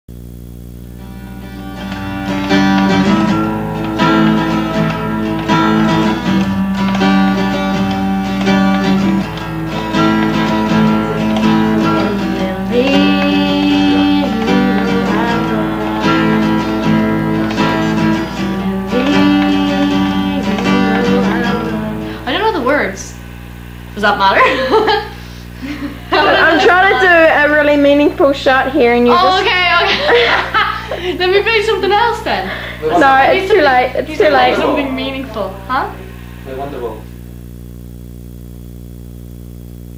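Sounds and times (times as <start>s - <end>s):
acoustic guitar strummed and plucked: 0.9s - 23.0s, 26.0s - 36.2s.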